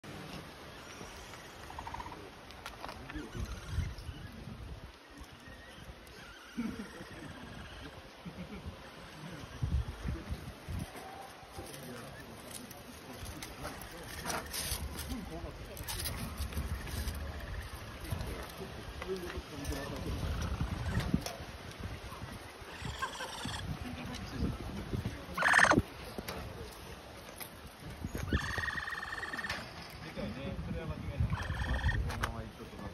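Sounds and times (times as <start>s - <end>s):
capybara calling: 0.7s - 2.3s, 3.1s - 4.4s, 5.2s - 8.0s, 22.7s - 23.8s, 25.4s - 25.8s, 28.2s - 29.8s, 31.2s - 32.2s
capybara wavering call: 22.7s - 23.7s, 25.4s - 25.8s, 28.2s - 29.7s, 31.3s - 32.0s.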